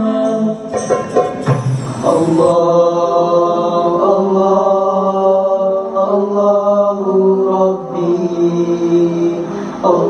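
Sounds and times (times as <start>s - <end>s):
boys singing a cappella chant: 0.0s - 0.9s, 1.7s - 10.0s.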